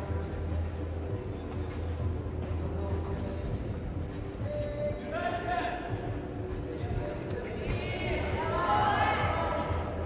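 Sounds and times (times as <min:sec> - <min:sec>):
voices in a hall: 0:00.0 - 0:10.0.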